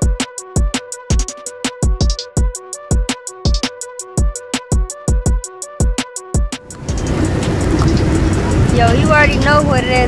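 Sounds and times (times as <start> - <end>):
woman's voice: 8.7 - 10.0.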